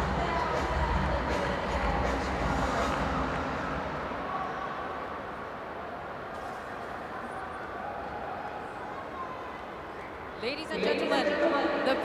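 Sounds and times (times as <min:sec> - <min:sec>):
faint crowd noise: 0:00.0 - 0:12.0
low stadium rumble: 0:00.0 - 0:12.0.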